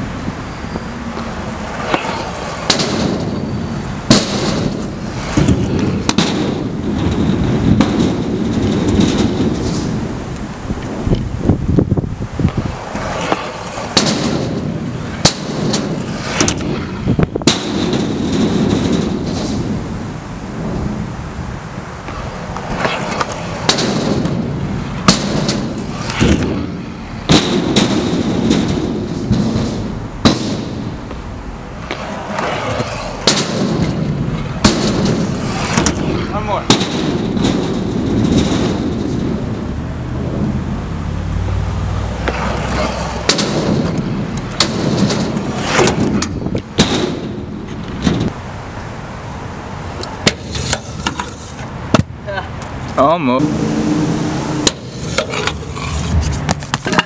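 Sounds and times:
scooter wheels rolling on concrete: 0.0 - 57.0
scooter landing cracks and bangs: 1.9 - 3.4, 4.1 - 10.1, 13.2 - 20.1, 22.7 - 31.2, 31.8 - 39.6, 42.2 - 48.4.

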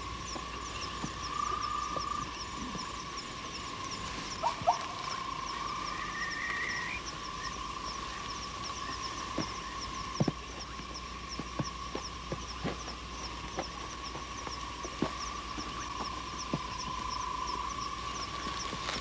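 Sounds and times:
frogs and insects trilling: 0.0 - 19.0.

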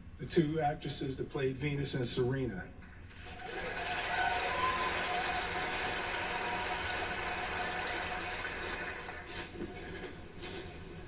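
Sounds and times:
audience applause through tv speakers: 3.2 - 9.5
faint cheers: 3.3 - 8.3.

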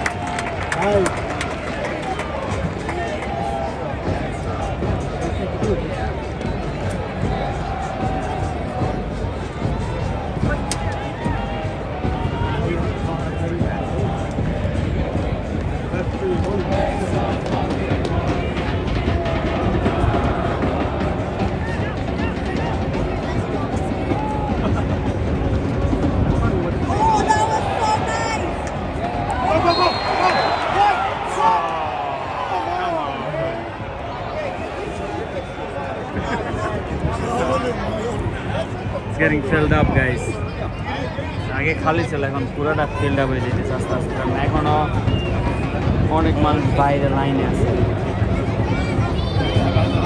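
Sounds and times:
stadium crowd shouting and chanting: 0.0 - 50.0.

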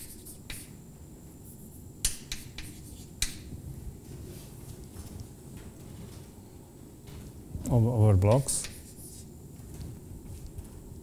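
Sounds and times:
chalk tapping and scraping on blackboard: 0.0 - 0.8, 1.4 - 3.5, 8.5 - 9.3.

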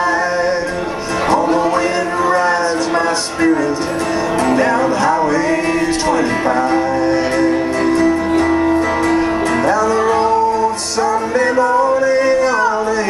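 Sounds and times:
acoustic guitar: 0.0 - 13.0
wordless sliding lead melody: 0.0 - 13.0.

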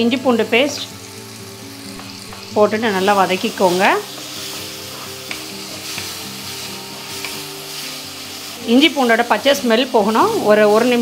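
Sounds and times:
masala sizzling in a pot: 0.0 - 11.0
wooden spatula stirring: 3.4 - 8.6.

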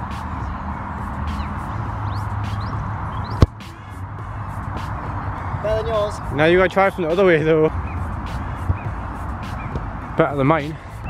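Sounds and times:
distant motorway traffic rumble: 0.0 - 11.0.

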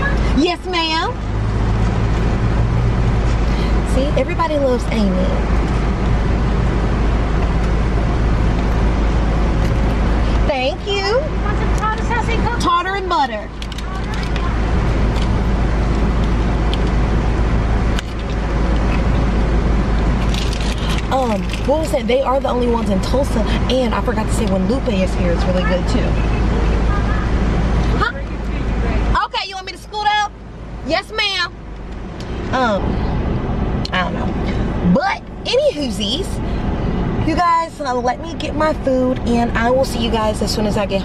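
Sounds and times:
car engine idling: 0.0 - 41.0.

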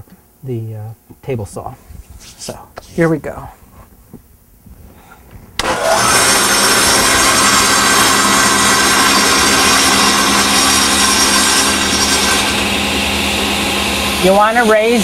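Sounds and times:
motor hum and blade whine: 5.6 - 15.0
table saw running: 5.6 - 15.0.

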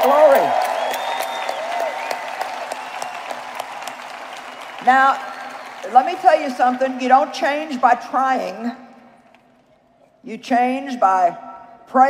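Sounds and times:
crowd applauding: 0.0 - 7.7.

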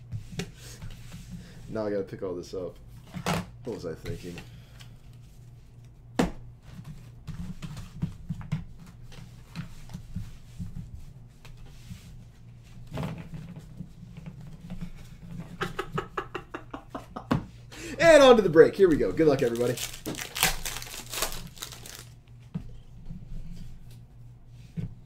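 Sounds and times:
handling packaging on a desk: 18.9 - 22.2.

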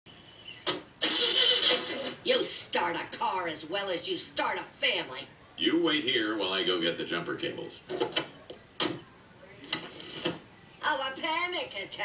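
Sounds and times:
car starter cranking engine: 1.0 - 2.2.

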